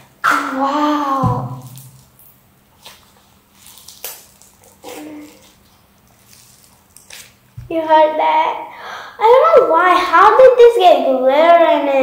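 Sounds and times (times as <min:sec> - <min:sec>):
slime squelching and popping: 0:00.2 - 0:07.7.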